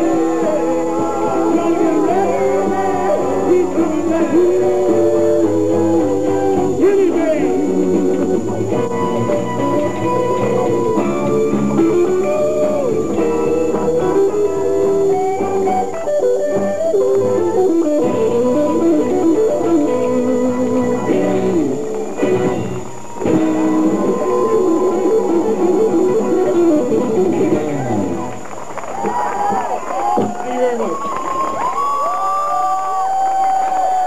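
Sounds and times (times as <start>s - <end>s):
live band playing: 0.0s - 29.6s
electric guitar: 0.0s - 34.0s.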